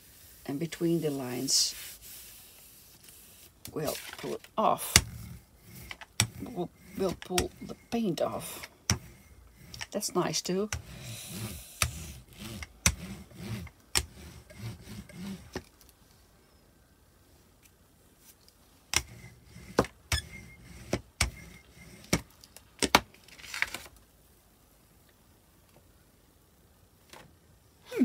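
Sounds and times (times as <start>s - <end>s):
rubber roller rumbling over paper: 0.0s - 15.7s, 19.0s - 22.3s
paper rustling: 1.7s - 6.0s, 22.6s - 23.9s.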